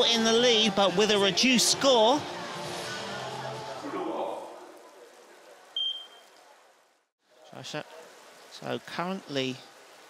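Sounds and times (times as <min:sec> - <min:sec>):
short high beep: 0:05.8 - 0:06.3.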